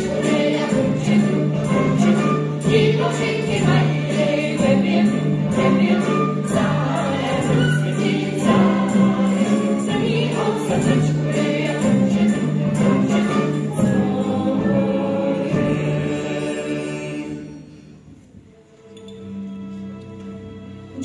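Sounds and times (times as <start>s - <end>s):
choir singing over music: 0.0s - 18.0s.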